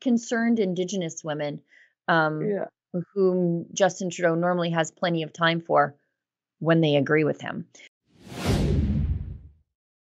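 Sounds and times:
whoosh falling into low rumble: 8.2s - 9.6s.

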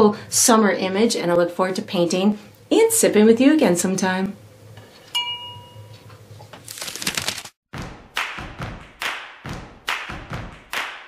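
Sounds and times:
glass clink: 5.1s - 6.0s.

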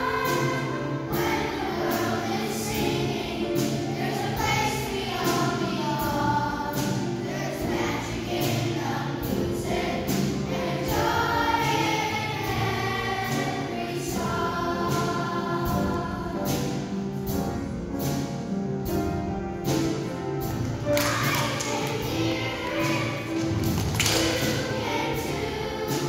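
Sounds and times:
children's choir singing: 0.0s - 26.0s.

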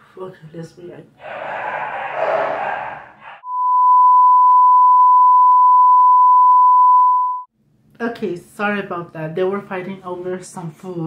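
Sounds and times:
censor bleep tone: 3.4s - 7.5s.

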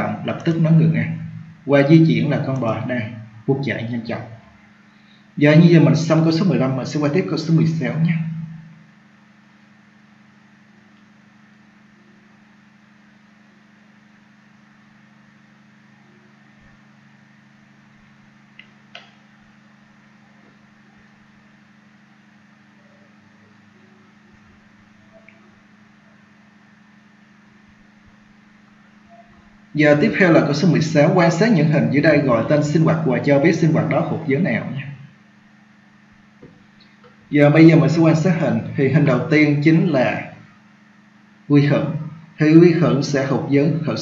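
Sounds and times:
low electrical hum: 0.0s - 44.0s.

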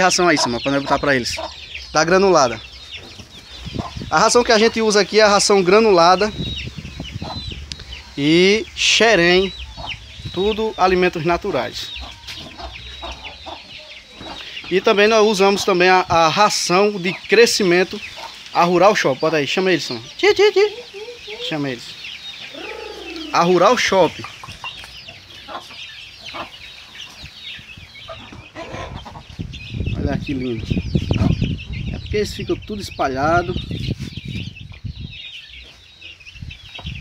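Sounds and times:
hen clucking low: 0.0s - 1.6s, 20.2s - 21.8s, 22.4s - 24.4s, 28.1s - 29.3s
hen clucking: 0.0s - 29.5s, 30.8s - 31.9s
chicks peeping: 0.0s - 37.0s.

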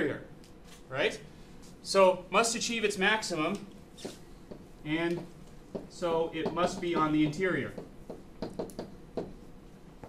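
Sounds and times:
stylus tapping on writing surface: 4.0s - 9.4s.

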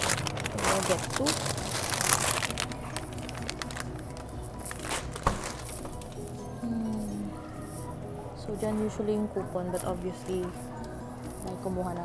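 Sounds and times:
plastic bags crinkling: 0.0s - 6.4s
background music: 0.0s - 12.0s.

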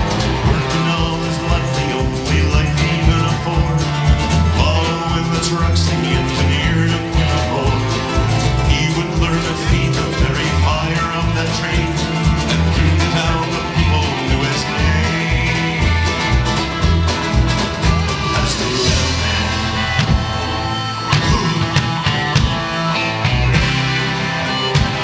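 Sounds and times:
country bluegrass band playing: 0.0s - 25.0s
upright bass line: 0.0s - 25.0s.

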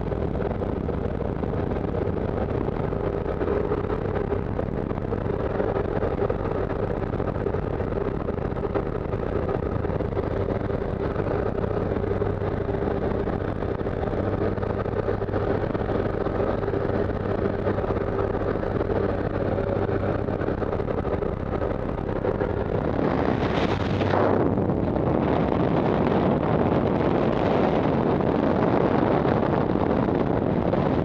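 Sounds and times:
plane engine and propeller drone: 0.0s - 31.0s
wind rushing: 1.1s - 31.0s.

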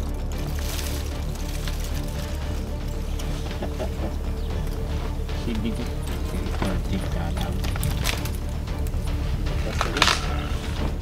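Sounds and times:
elephant breaking tree roots: 0.0s - 5.0s, 6.0s - 11.0s
background music: 0.0s - 11.0s.

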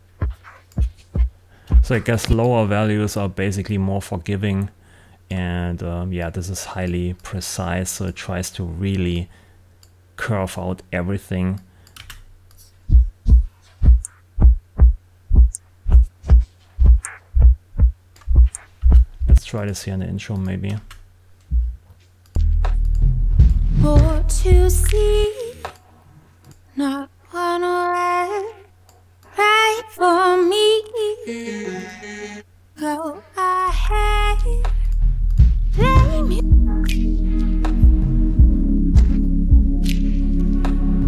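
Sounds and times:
kick drum thumps: 0.2s - 2.4s, 12.9s - 19.4s, 21.5s - 21.8s, 23.4s - 24.7s, 35.4s - 36.8s, 37.8s - 39.8s
low bass hum: 12.8s - 19.4s, 21.5s - 21.8s, 22.4s - 25.3s, 33.7s - 41.0s
faint hi-hat ticks: 15.3s - 19.5s, 24.4s - 25.8s, 34.4s - 35.6s.

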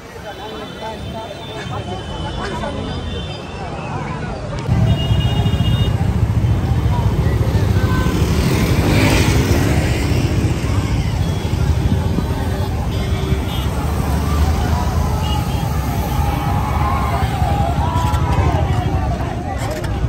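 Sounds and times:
crowd talking: 0.0s - 20.0s
motorcycles and road traffic: 0.0s - 20.0s.

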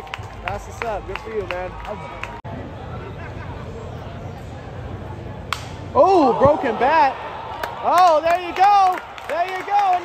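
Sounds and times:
crowd murmur: 2.0s - 6.0s.

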